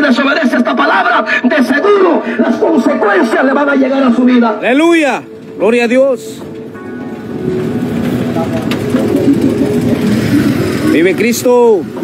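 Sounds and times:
street traffic noise: 0.0s - 12.0s
small motor vehicle approaching: 5.0s - 12.0s.

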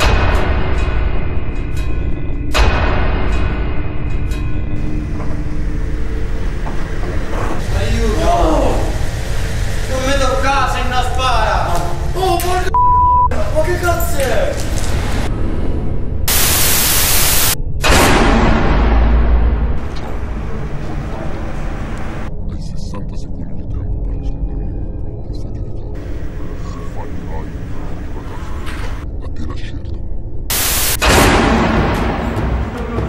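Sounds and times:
static hiss: 7.2s - 12.2s, 16.3s - 17.6s, 26.0s - 28.6s, 30.5s - 31.1s
low rumble: 14.8s - 33.0s
white noise hiss: 16.3s - 17.6s, 30.5s - 31.1s
noisy hit: 16.3s - 21.2s, 30.5s - 32.9s.

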